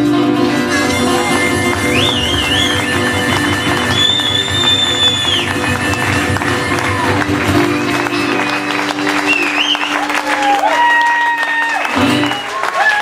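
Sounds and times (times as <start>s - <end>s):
harmonica lead: 0.0s - 10.2s
acoustic guitar: 0.0s - 12.9s.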